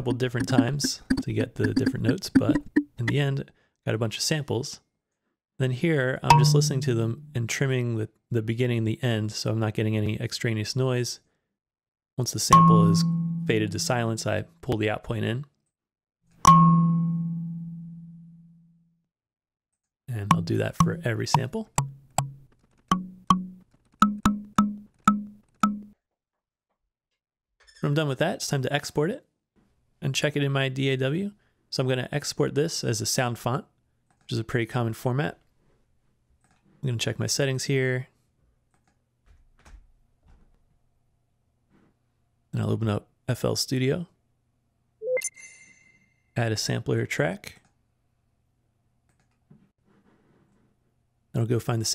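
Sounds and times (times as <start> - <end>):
kalimba note ringing: 6.3 - 7.4, 12.6 - 14.0, 16.5 - 18.3, 20.3 - 25.9.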